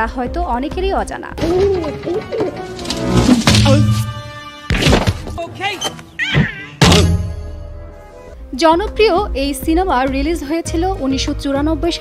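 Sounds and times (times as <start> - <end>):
background music: 0.0 - 12.0
loud thud: 6.8 - 7.4.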